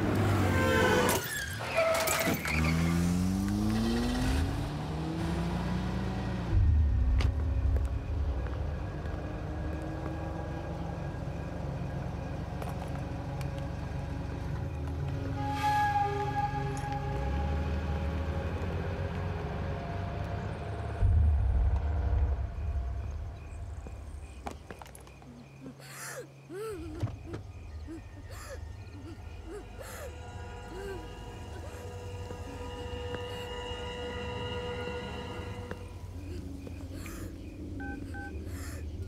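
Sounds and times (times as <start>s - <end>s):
car engine revving: 2.4s - 12.5s
film music score: 26.6s - 39.0s.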